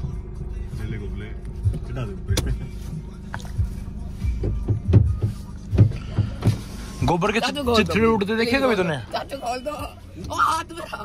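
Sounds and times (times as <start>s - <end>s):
steady low hum: 0.0s - 11.0s.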